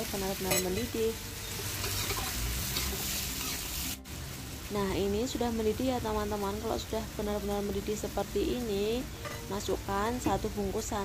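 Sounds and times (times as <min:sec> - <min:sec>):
metal spatula scraping a wok: 0:00.4 - 0:03.9, 0:09.1 - 0:09.5.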